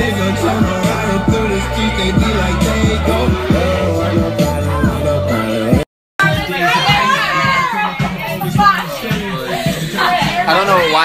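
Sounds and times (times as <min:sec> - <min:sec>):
lively voices: 0:00.0 - 0:11.0
music with a steady beat: 0:00.0 - 0:11.0.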